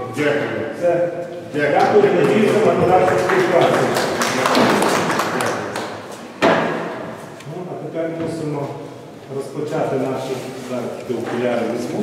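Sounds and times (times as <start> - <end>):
people clapping: 1.7 - 6.4.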